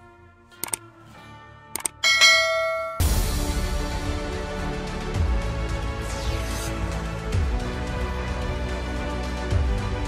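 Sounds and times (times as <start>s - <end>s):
mouse click sound effects: 0.6s - 0.8s, 1.8s - 2.0s
bell chime: 2.0s - 3.3s.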